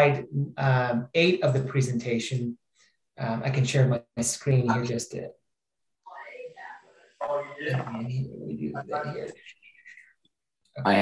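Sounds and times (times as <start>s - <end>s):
low voice murmuring: 7.2s - 8.1s.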